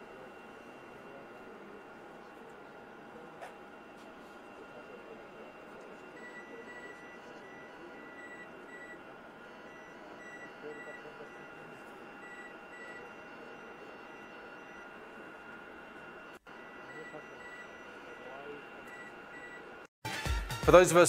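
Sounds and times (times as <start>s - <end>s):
equipment hum: 0.0s - 19.9s
high electronic beeps: 4.6s - 19.7s.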